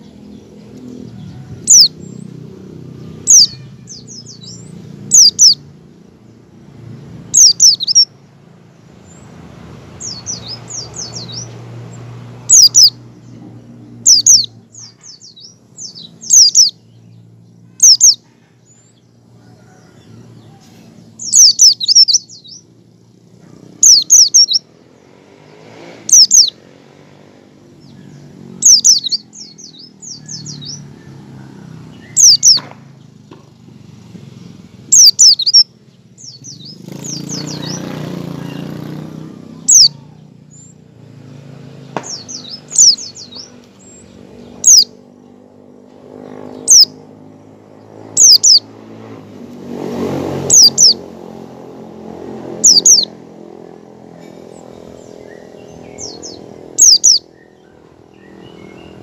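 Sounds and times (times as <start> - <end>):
bird chirping rapid high notes: 3.1 - 5.7, 7.3 - 8.2, 12.5 - 13.1, 14.0 - 17.0, 21.2 - 22.7, 23.8 - 24.7, 28.6 - 30.8, 32.0 - 32.6, 34.9 - 38.8, 42.1 - 45.0, 48.1 - 48.7, 50.4 - 51.0, 52.4 - 53.2, 54.7 - 57.6.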